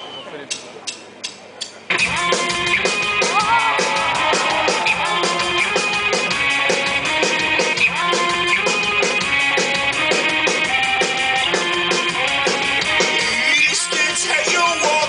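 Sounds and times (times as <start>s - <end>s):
drum kit fast beat: 1.9s - 15.0s
electric guitars riff: 1.9s - 15.0s
rock band playing: 1.9s - 15.0s.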